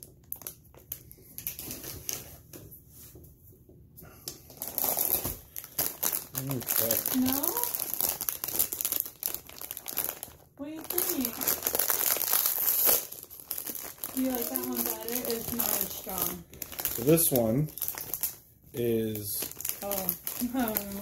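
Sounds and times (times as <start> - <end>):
plastic bag crinkling: 0.0 - 2.4, 4.5 - 21.0.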